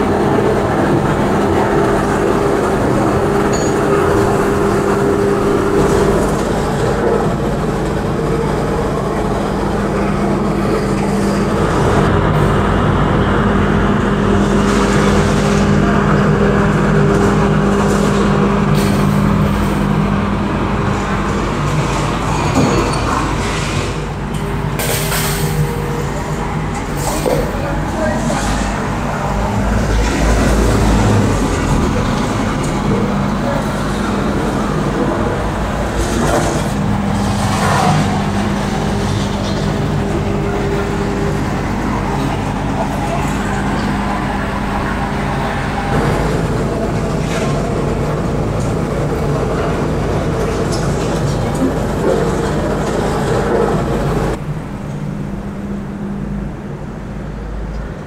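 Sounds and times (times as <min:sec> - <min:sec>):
demolition machinery droning: 0:00.0 - 0:58.0
street traffic: 0:00.0 - 0:58.0.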